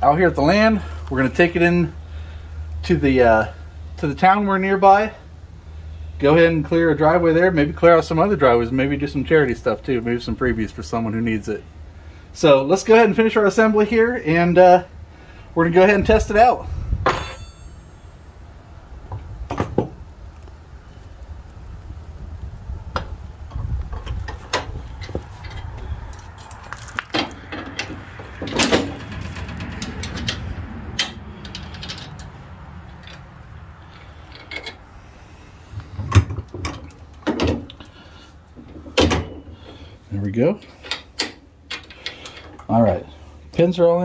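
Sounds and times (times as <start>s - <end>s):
metal pins and chain clinking: 17.0s - 18.2s, 25.4s - 33.2s.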